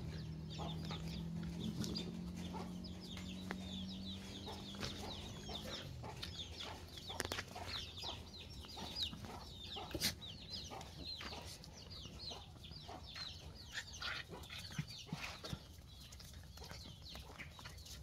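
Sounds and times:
chickens clucking: 0:00.0 - 0:18.0
chicks peeping: 0:00.0 - 0:18.0.

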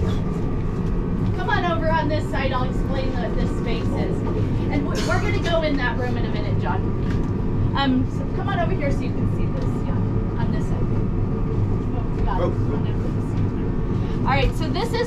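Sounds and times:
air-handling machinery hum: 0:00.0 - 0:15.0
indistinct voices: 0:01.4 - 0:06.8.

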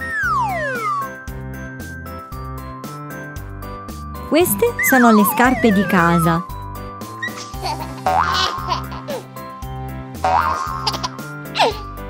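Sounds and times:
light children's background music: 0:00.5 - 0:12.0
cartoon sound effects gliding in pitch: 0:04.3 - 0:06.4.

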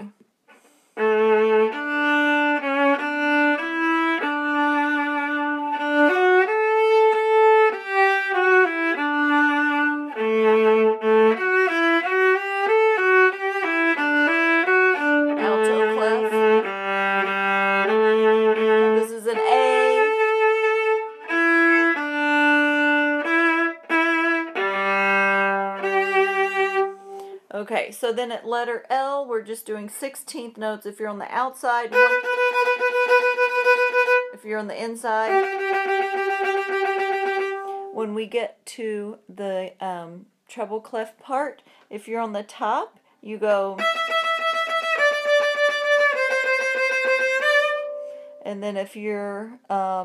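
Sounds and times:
solo viola playing: 0:01.0 - 0:27.4, 0:31.8 - 0:34.4, 0:35.1 - 0:38.0, 0:43.8 - 0:48.5.

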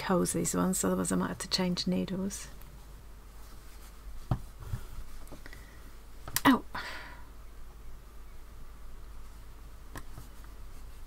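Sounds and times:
low steady hum: 0:00.0 - 0:11.0
hands handling stuffed fabric: 0:02.7 - 0:05.4, 0:09.2 - 0:11.0
soft thuds: 0:04.2 - 0:05.4.

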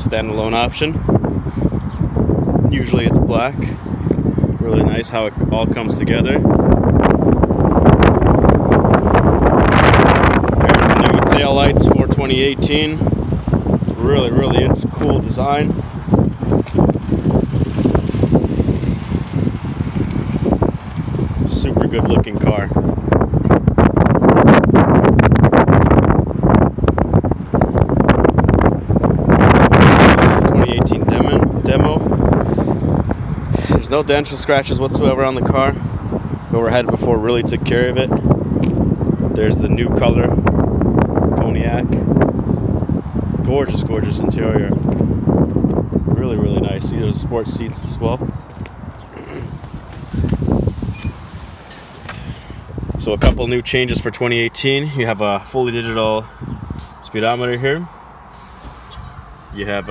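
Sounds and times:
gusty wind buffeting microphone: 0:00.0 - 0:59.9
muffled rumble: 0:05.6 - 0:25.2, 0:30.1 - 0:57.9.

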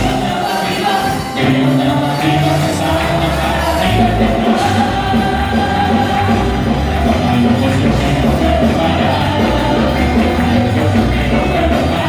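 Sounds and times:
band playing worship music: 0:00.0 - 0:12.0
people singing praise song: 0:00.0 - 0:12.0.

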